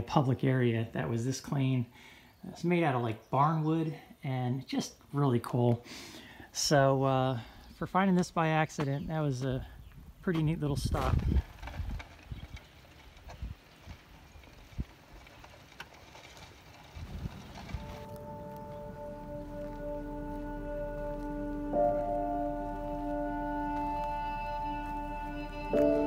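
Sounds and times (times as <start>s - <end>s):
low drone: 17.3s - 26.0s
slow music of held chords: 17.9s - 26.0s.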